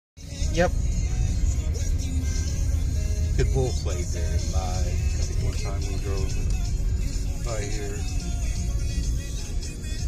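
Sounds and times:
car road and engine rumble: 0:00.2 - 0:10.0.

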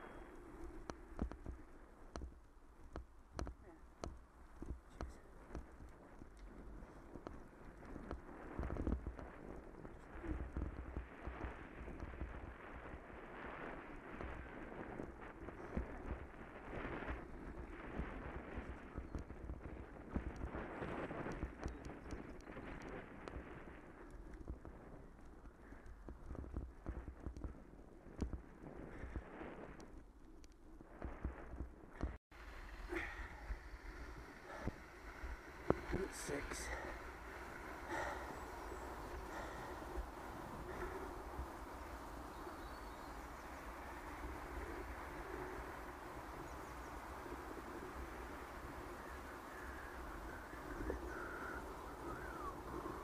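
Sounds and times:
low rumble: 0:30.8 - 0:53.0
bike rattling over bumps: 0:32.0 - 0:53.0
bicycle tyres crunching on gravel: 0:32.4 - 0:53.0.

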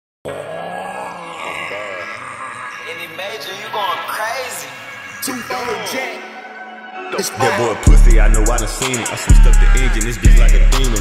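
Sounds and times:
man's wordless vocal ad-lib: 0:00.3 - 0:06.4, 0:07.1 - 0:11.0
hip-hop beat: 0:03.2 - 0:11.0.

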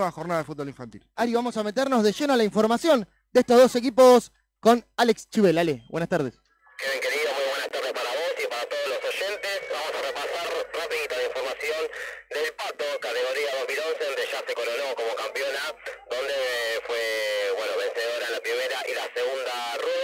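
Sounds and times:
person talking over telephone line: 0:00.0 - 0:20.0.

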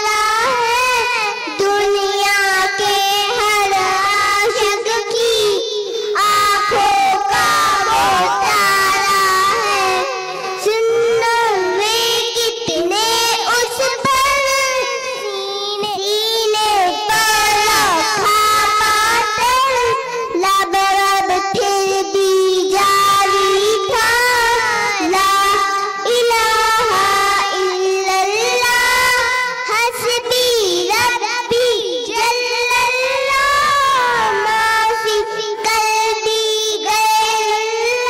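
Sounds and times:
girls singing into microphones: 0:00.0 - 0:38.0.

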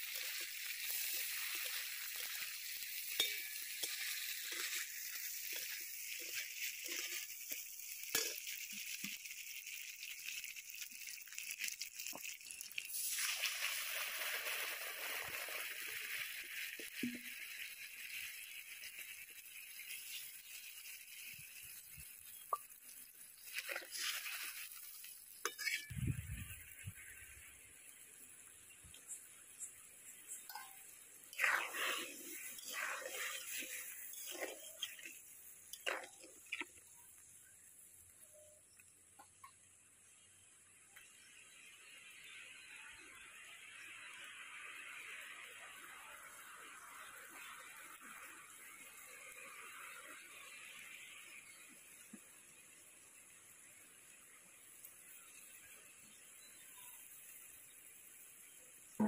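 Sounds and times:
water heating with faint hiss: 0:00.0 - 0:42.3, 0:43.0 - 0:59.0
water sizzling in hot fat: 0:00.0 - 0:59.0.

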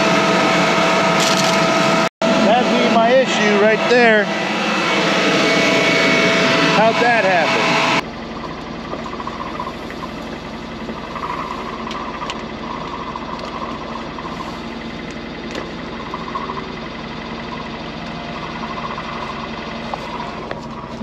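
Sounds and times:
tractor and planter humming: 0:00.0 - 0:21.0
wavering high whine: 0:00.0 - 0:21.0.

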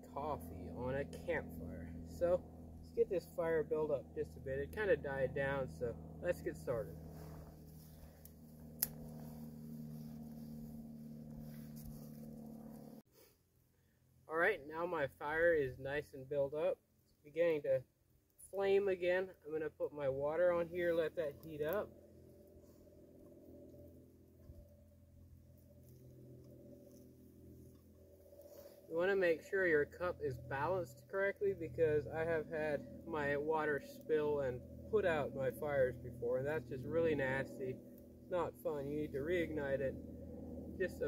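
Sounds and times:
distant engine drone: 0:00.0 - 0:13.0, 0:18.4 - 0:41.0
low steady hum: 0:00.0 - 0:13.1, 0:13.7 - 0:41.0
dry stick snapping: 0:08.2 - 0:09.2.

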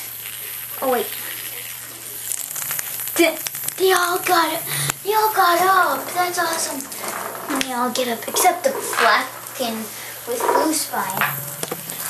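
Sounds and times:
toy bugs buzzing and rattling: 0:00.0 - 0:12.0.

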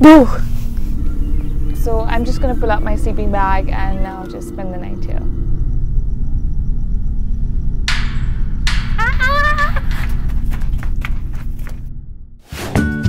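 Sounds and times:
wavering wail: 0:00.0 - 0:10.8
low rumbling drone: 0:00.0 - 0:12.4.

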